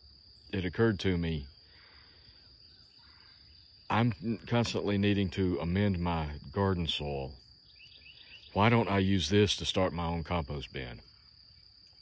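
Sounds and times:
high-pitched insect chorus: 0:00.0 - 0:12.0
man talking: 0:00.5 - 0:01.5, 0:03.9 - 0:07.4, 0:08.5 - 0:11.0.

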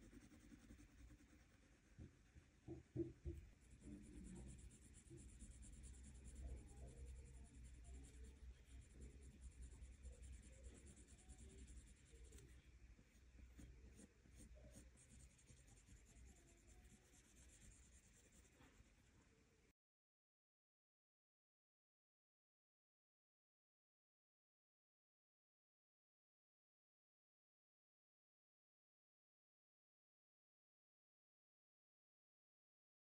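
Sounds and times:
pencil scratching on paper: 0:00.0 - 0:02.1, 0:03.0 - 0:19.0.

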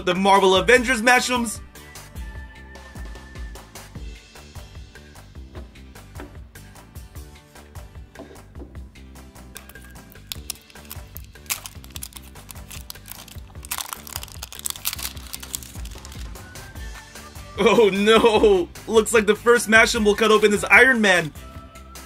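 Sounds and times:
background music: 0:00.0 - 0:22.0
plastic wrap crinkling: 0:09.6 - 0:16.4.

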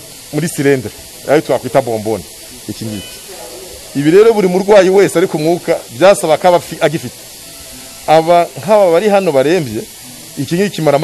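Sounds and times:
hiss of oxygen flowing: 0:00.0 - 0:11.0
man speaking: 0:00.3 - 0:03.1, 0:04.0 - 0:07.2, 0:08.1 - 0:11.0.

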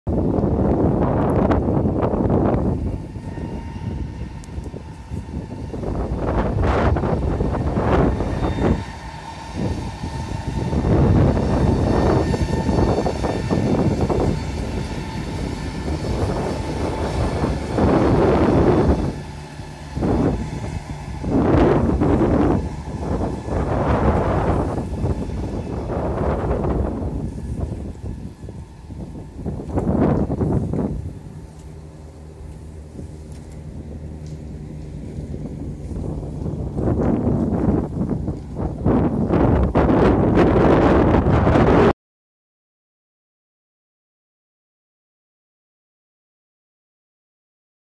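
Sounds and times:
train passing: 0:00.1 - 0:41.9.

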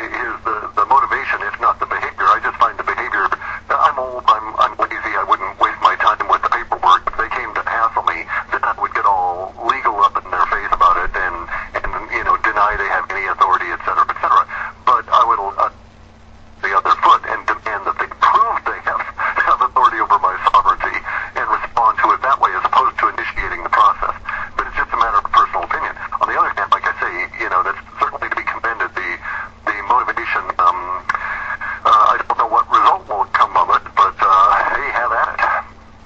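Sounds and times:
person talking over radio: 0:00.0 - 0:15.8, 0:16.6 - 0:35.7
faint steady hum: 0:00.0 - 0:36.0.

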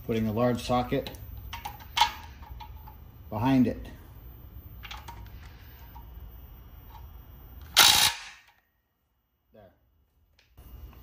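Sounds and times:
impact wrench hammering a nut: 0:07.8 - 0:08.6.

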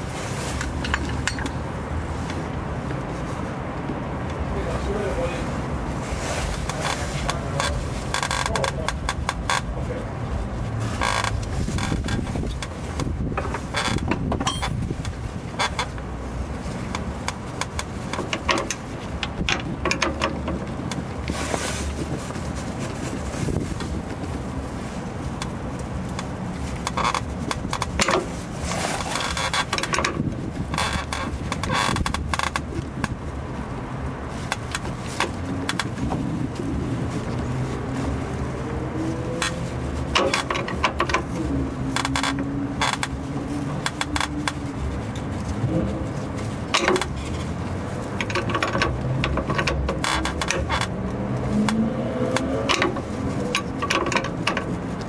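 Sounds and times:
low vehicle hum: 0:00.0 - 0:55.0.

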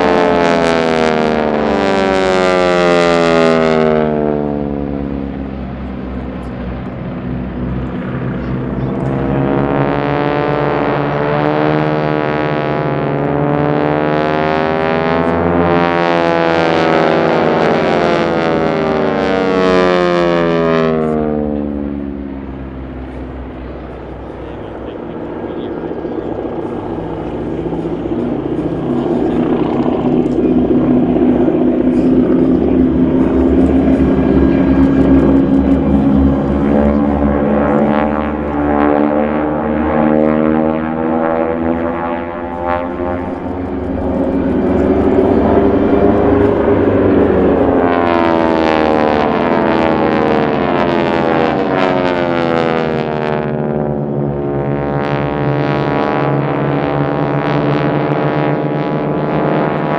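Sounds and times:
propeller plane engines droning: 0:00.0 - 0:59.9.

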